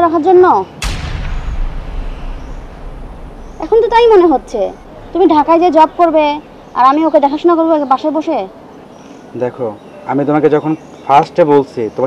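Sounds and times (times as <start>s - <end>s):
loud boom with deep rumble: 0.8s - 7.5s
woman speaking: 3.6s - 8.5s.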